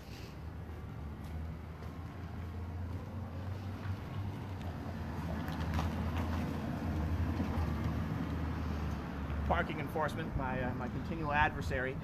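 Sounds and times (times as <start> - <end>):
low steady street rumble: 0.0 - 12.0.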